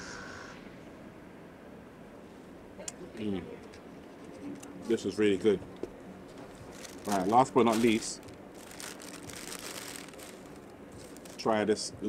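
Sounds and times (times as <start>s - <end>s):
low background noise: 0.0s - 12.0s
paper bag crinkling: 6.3s - 11.6s.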